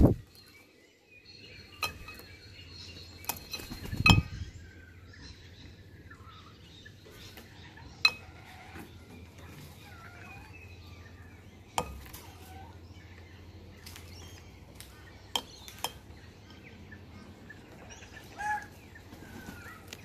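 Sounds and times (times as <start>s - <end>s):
faint bird chirps and whistles: 0.0s - 13.2s
bird bill striking a bowl: 1.7s - 2.4s, 3.2s - 4.4s, 8.0s - 8.5s, 11.7s - 12.5s, 14.9s - 16.6s.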